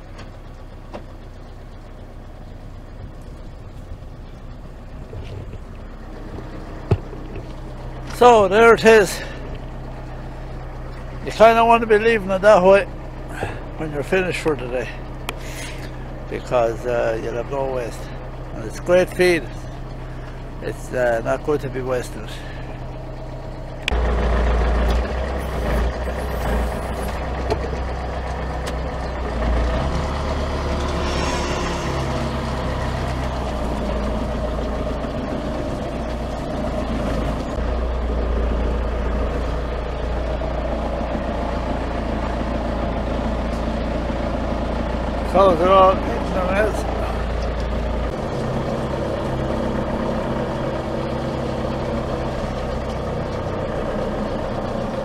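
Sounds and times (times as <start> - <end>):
diesel engine running: 0.0 - 55.0
brief wavering call: 31.0 - 32.4.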